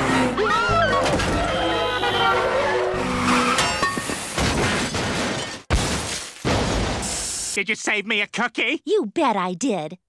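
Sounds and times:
tense cartoon chase music: 0.0s - 3.6s
car crash impact: 4.2s - 7.2s.

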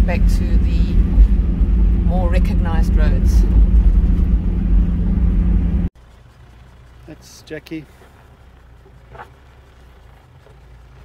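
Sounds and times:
engine and tyre rumble on gravel: 0.0s - 11.0s
faint outdoor background: 0.0s - 11.0s.

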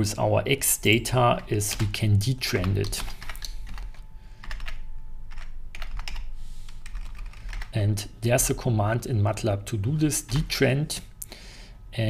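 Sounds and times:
typing on computer keyboard: 2.6s - 7.8s.

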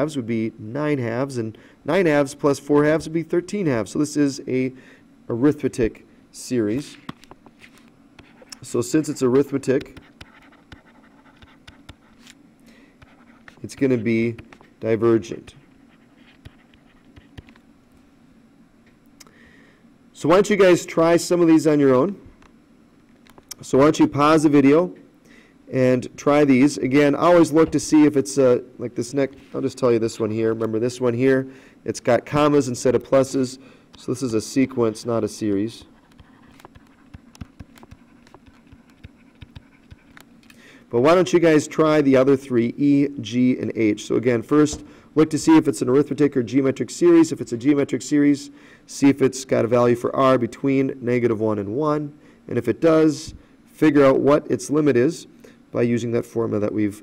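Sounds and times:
low steady hum: 0.0s - 57.0s
stylus scratching while writing: 8.2s - 12.4s, 13.0s - 14.7s, 15.5s - 17.6s, 35.8s - 40.3s
stylus tapping on pen tablet: 9.8s - 12.0s, 36.2s - 40.2s.

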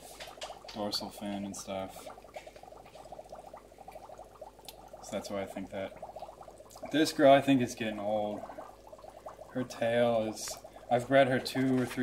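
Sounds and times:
aquarium water bubbling: 0.0s - 12.0s.

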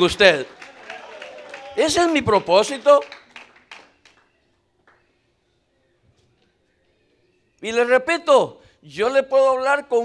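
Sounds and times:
man's voice: 1.7s - 3.0s, 7.6s - 10.0s.

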